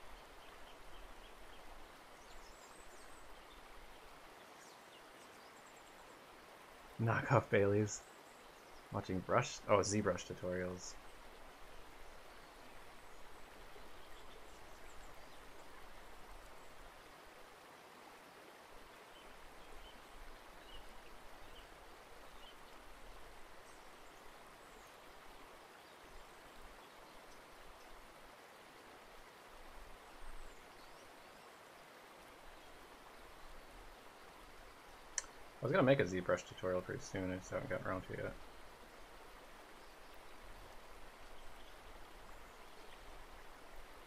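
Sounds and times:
faint ticks: 35.1s - 35.4s.

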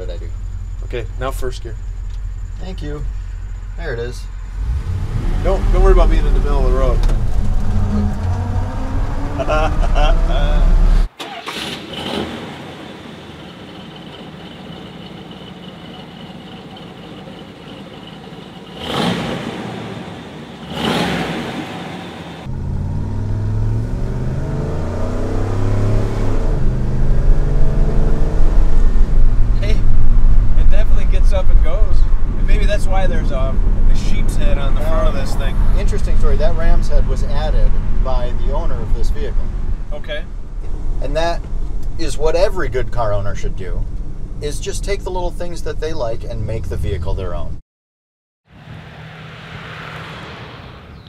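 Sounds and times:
vee-eight engine revving: 0.0s - 39.8s.

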